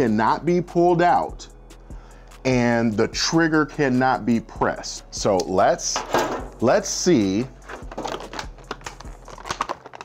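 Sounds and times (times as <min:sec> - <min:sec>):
plastic packaging crinkling: 0:07.6 - 0:10.0.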